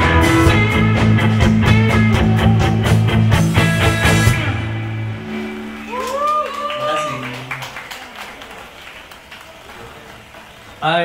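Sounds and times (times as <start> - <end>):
crowd cheering: 5.1 - 11.0
people clapping: 5.7 - 10.9.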